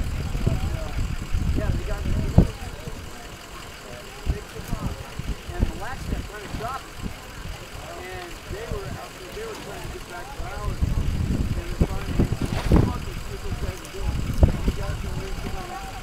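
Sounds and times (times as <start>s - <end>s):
distant voices calling out: 0.0s - 16.0s
low rumble: 4.2s - 16.0s.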